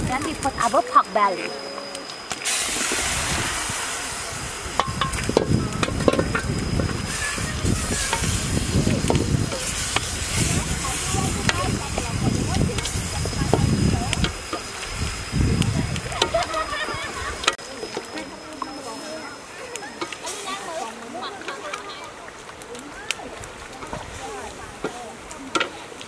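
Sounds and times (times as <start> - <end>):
meat sizzling in a wok: 2.2 - 26.0
metal spatula scraping a wok: 5.8 - 8.8.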